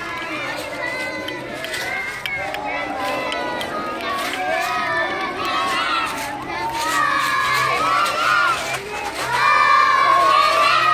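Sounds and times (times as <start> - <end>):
children shouting and cheering: 0.0 - 10.9.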